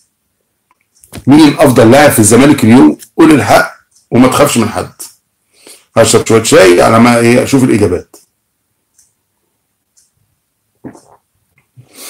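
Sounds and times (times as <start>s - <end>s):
man sipping tea: 10.8s - 12.0s.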